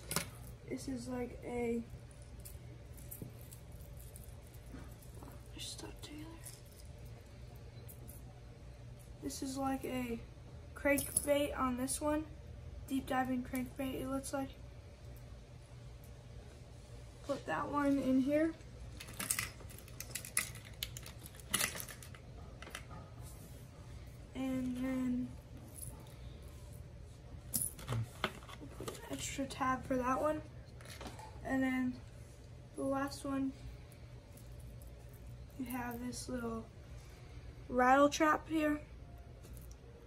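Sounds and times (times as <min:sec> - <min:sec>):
low room hum: 0:00.0 - 0:40.0.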